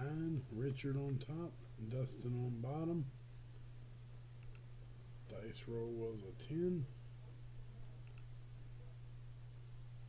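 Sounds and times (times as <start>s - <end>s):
steady low hum: 0.0s - 10.0s
computer mouse click: 4.4s - 4.7s, 8.0s - 8.3s.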